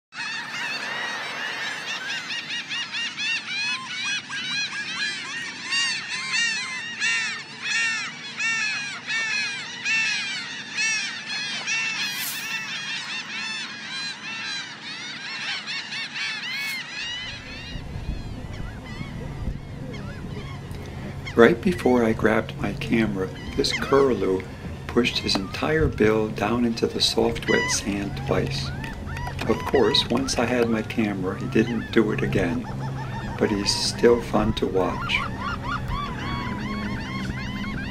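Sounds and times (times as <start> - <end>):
flock of gulls calling: 0.1 - 37.9
low steady rumble: 16.9 - 37.9.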